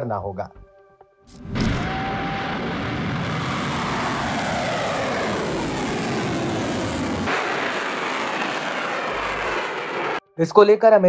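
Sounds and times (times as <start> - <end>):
rocket motor exhaust rushing: 1.4 - 10.2.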